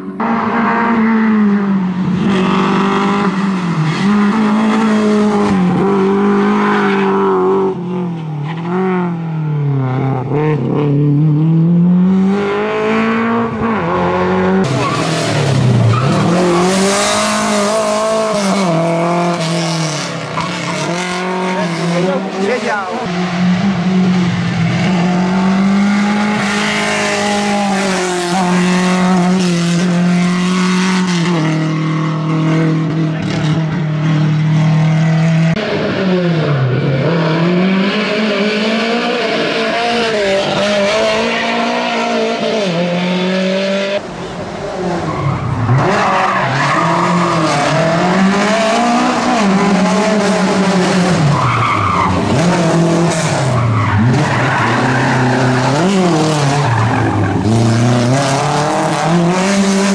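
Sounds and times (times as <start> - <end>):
car engine revving hard: 9.8 - 44.1, 45.5 - 59.9.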